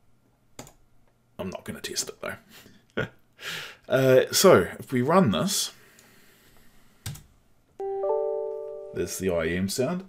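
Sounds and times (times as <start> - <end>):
two-note electronic chime: 7.8 - 9.2.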